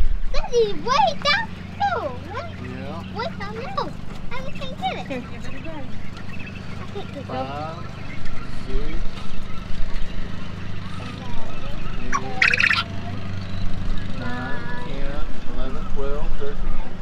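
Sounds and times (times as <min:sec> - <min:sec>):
quail calling: 0:00.5 - 0:14.6.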